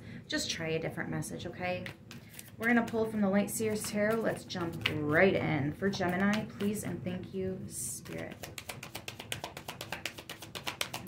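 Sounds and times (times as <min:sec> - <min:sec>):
cards being shuffled: 0:01.8 - 0:05.2, 0:08.0 - 0:11.0.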